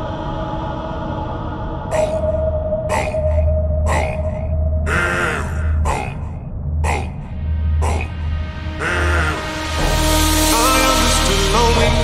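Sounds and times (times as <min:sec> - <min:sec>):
processed vocal sound: 0:00.0 - 0:12.0.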